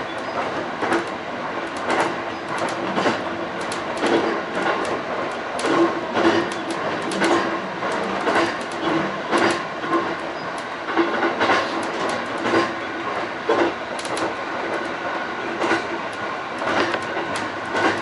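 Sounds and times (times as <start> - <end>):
train rolling noise: 0.0 - 18.0
wheel clicks over rail joints: 0.1 - 18.0.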